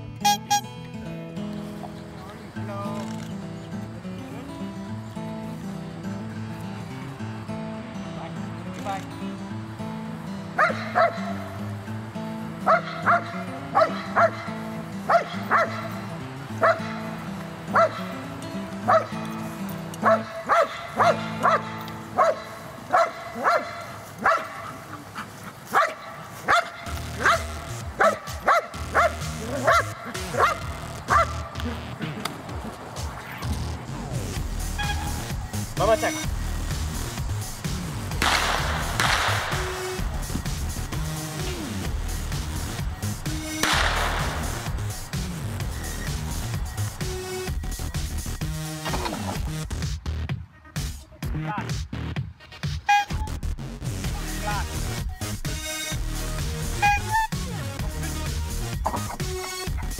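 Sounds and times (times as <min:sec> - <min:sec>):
background music: 0:00.0 - 0:59.9
dog barking: 0:10.6 - 0:11.5, 0:12.6 - 0:16.0, 0:16.6 - 0:17.0, 0:17.7 - 0:18.1, 0:18.9 - 0:19.1, 0:20.0 - 0:31.5.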